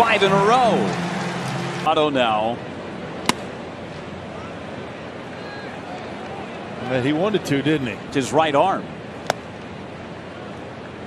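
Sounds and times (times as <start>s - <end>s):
crowd hum: 0.0s - 1.9s
baseball smacking into catcher's mitt: 3.2s - 3.5s.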